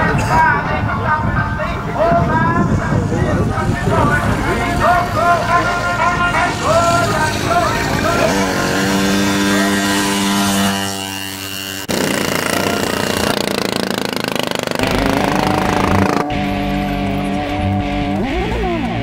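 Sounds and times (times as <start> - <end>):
voices talking: 0.0 - 10.5
steady drone: 2.7 - 19.0
rough rattling car engine: 3.2 - 19.0.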